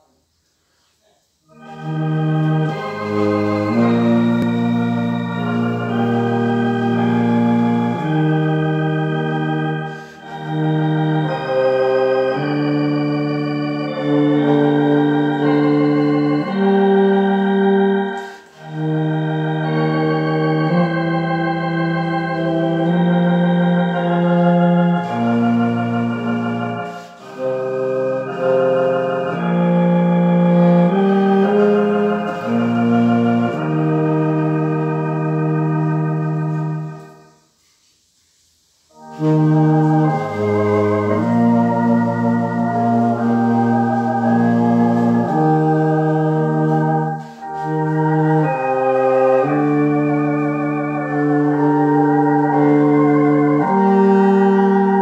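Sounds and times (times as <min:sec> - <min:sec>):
electronic organ playing a hymn: 0:01.5 - 0:37.4, 0:38.9 - 0:55.0.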